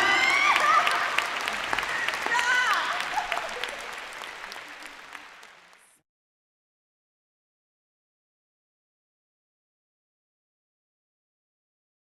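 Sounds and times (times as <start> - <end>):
audience applauding and cheering: 0.0 - 6.0.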